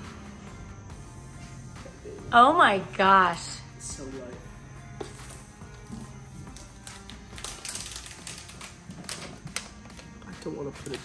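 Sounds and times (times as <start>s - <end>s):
light background music: 0.0s - 11.0s
plastic wrap crinkling and tapping: 6.4s - 11.0s.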